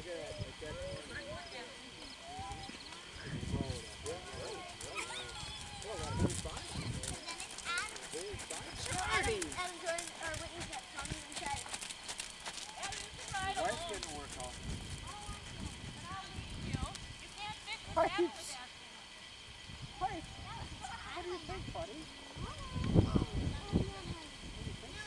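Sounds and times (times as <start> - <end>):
distant people chatting: 0.0 - 25.0
horse walking on sand: 3.6 - 17.6.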